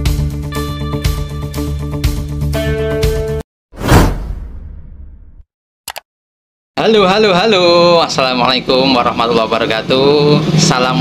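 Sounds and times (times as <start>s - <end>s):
whoosh sound effect: 3.8s - 5.4s.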